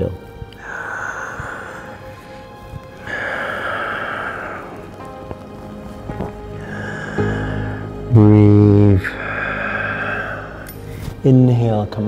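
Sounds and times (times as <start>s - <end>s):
person breathing out: 0.5s - 5.3s, 6.4s - 8.0s, 9.0s - 11.2s.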